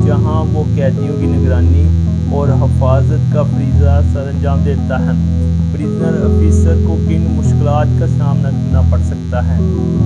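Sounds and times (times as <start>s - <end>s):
man narrating: 0.0s - 9.7s
background guitar music: 0.0s - 10.0s
low hum: 0.0s - 10.0s.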